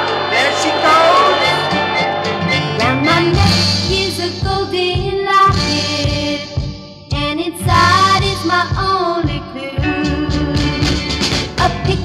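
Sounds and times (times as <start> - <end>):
girl-group pop record playing: 0.0 - 12.0.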